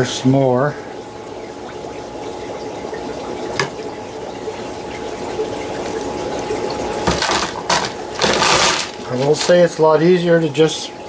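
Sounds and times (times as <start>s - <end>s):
running water: 0.0s - 11.0s
paper towel crinkling: 7.3s - 10.0s.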